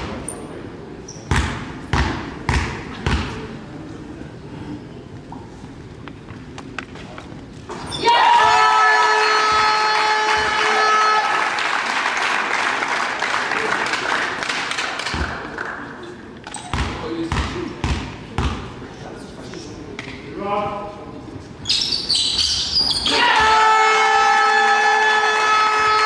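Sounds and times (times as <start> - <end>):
basketball bouncing on floor: 1.3 - 3.4, 16.6 - 18.6
crowd shouting and cheering: 7.9 - 12.8, 23.0 - 26.0.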